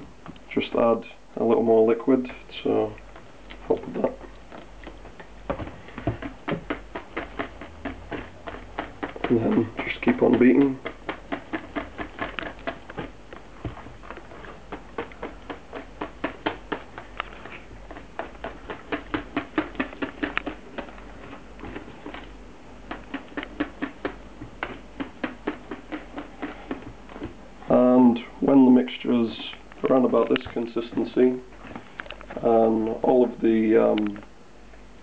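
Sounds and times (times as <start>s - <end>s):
whisk clicking against plastic bowl: 5.6s - 22.2s.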